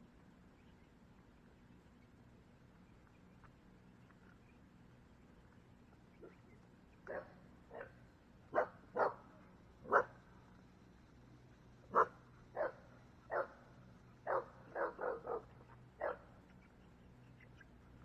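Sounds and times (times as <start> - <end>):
dog barking: 7.1 - 10.2, 11.9 - 13.6, 14.2 - 16.3.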